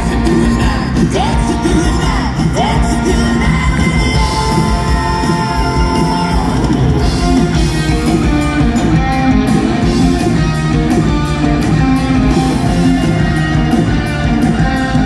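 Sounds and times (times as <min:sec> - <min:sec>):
electric guitars: 0:00.0 - 0:15.0
live rock band: 0:00.0 - 0:15.0
steady drum beat: 0:00.0 - 0:15.0.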